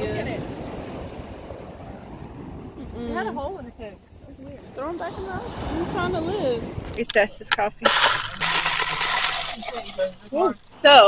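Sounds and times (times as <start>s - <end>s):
ice crackling: 4.7s - 10.8s
slurping through a straw: 7.9s - 10.3s.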